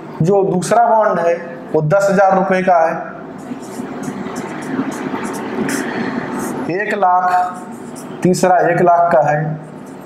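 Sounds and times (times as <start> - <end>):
steady background noise: 0.0 - 10.0
marker scratching on whiteboard: 3.3 - 8.9, 9.6 - 10.0.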